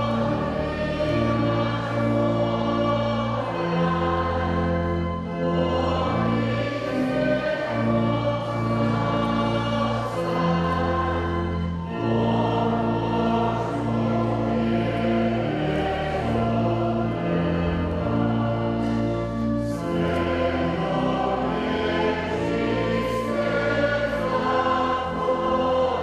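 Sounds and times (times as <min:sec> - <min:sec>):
choir singing a hymn: 0:00.0 - 0:26.0.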